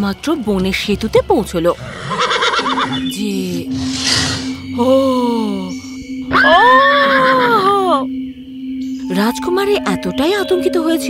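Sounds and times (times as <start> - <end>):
horse whinnying: 1.8 - 3.1
steady low tone: 3.0 - 11.0.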